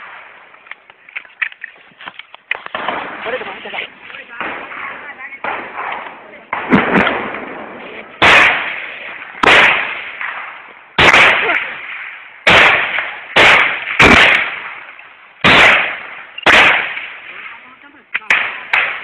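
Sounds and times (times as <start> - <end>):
gunshots with echo: 2.7 - 19.0.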